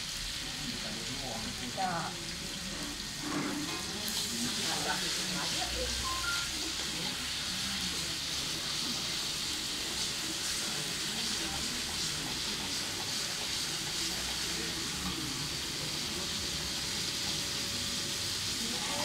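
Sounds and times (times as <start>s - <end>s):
onions sizzling in oil: 0.0s - 19.0s.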